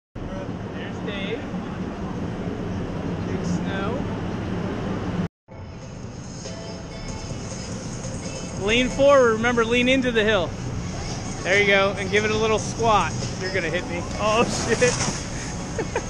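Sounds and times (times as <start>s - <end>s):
snowboard scraping over snow: 14.2s - 15.9s.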